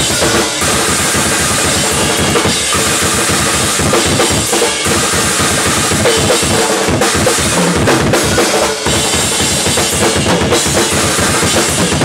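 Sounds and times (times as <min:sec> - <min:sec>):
fast drum kit playing: 0:00.0 - 0:12.0.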